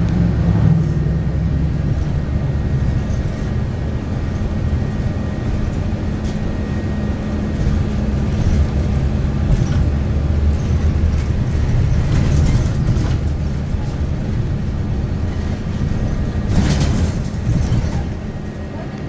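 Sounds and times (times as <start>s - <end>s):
bus drivetrain hum: 0.0s - 19.0s
road noise: 0.0s - 19.0s.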